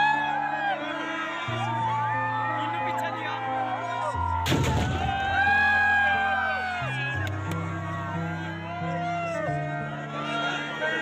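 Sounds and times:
music with held melody: 0.0s - 11.0s
firecracker bang with crackling: 4.5s - 5.1s.

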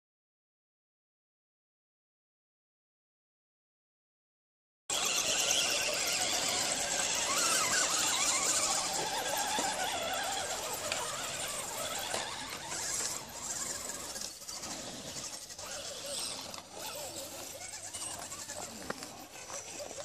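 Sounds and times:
rc truck motors whining: 4.9s - 20.0s.

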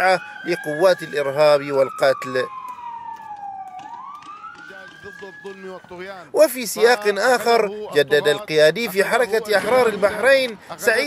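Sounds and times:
police siren wailing: 0.0s - 11.0s.

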